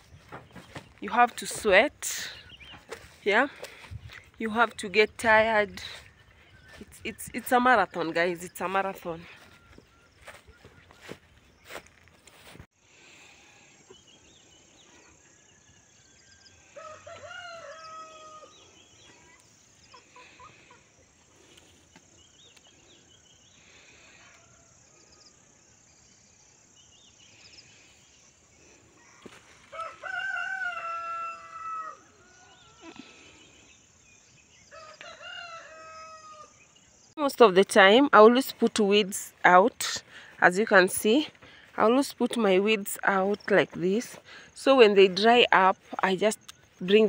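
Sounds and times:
rooster crowing: 0:16.7 - 0:18.6, 0:29.0 - 0:32.8, 0:34.7 - 0:36.6.

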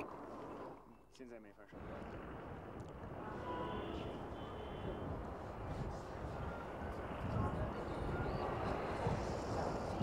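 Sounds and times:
faint voices: 0:03.0 - 0:10.0.

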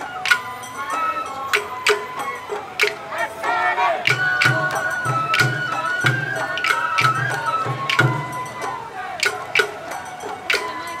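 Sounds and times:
bamboo flute melody: 0:00.0 - 0:11.0
sharp percussion strikes: 0:00.0 - 0:11.0.

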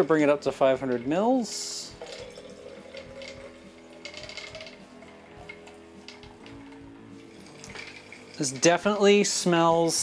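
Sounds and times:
soft background music: 0:00.0 - 0:10.0
water pouring into glass flask: 0:01.9 - 0:05.8, 0:07.2 - 0:08.7.

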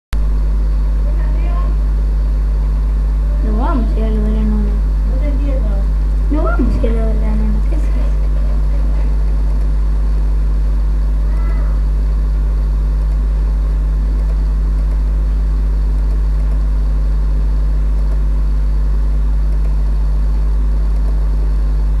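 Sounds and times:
loud steady low hum: 0:00.1 - 0:22.0.

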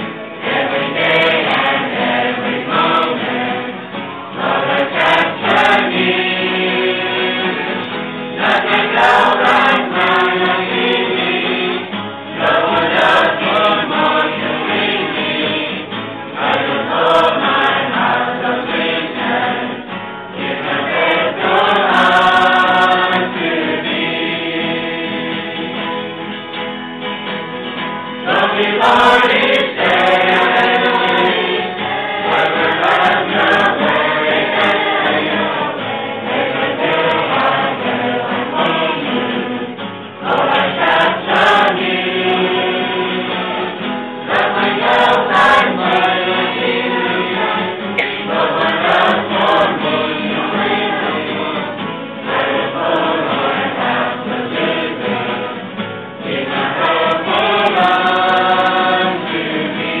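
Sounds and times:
group singing worship song: 0:00.0 - 0:26.3, 0:28.1 - 1:00.0
acoustic guitar: 0:00.0 - 1:00.0.

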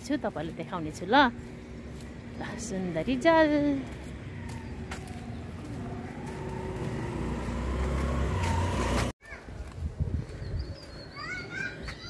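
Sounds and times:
motor scooter engine: 0:04.4 - 0:09.1.

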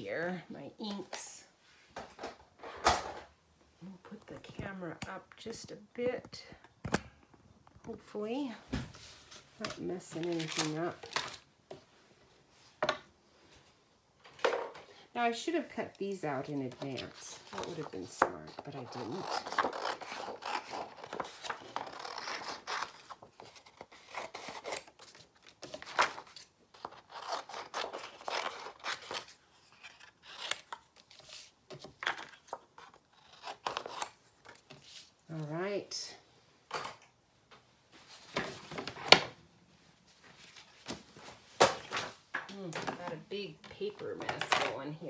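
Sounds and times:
scissors snipping paper: 0:16.8 - 0:31.2.

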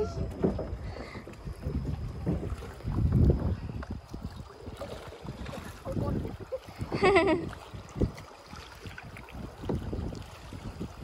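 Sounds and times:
flowing river: 0:00.0 - 0:11.0
paddles splashing in water: 0:00.0 - 0:11.0
wind buffeting microphone: 0:00.0 - 0:11.0.

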